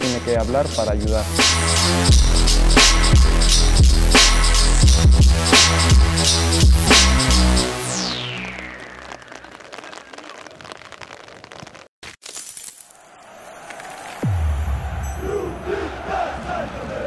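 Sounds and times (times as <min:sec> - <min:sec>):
music: 0:00.0 - 0:09.6
glassy shattering crash: 0:12.2 - 0:13.0
stadium crowd chanting and cheering: 0:13.1 - 0:17.0.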